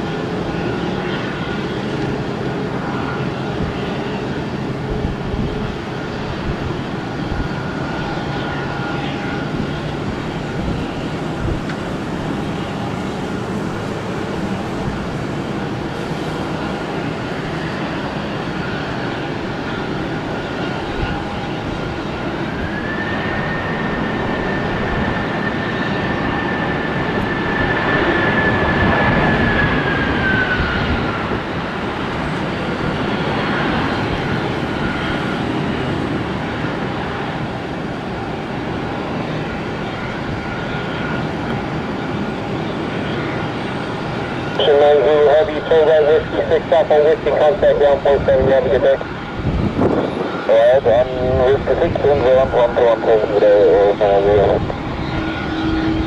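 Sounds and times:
engine whine: 0.0 - 56.0
jet engines: 0.0 - 56.0.

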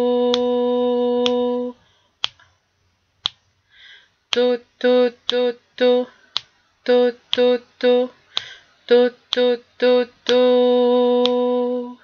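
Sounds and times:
person singing one steady pitch: 0.0 - 1.9, 4.3 - 12.0
faint breath: 1.8 - 2.2, 3.6 - 4.2, 8.2 - 8.8.

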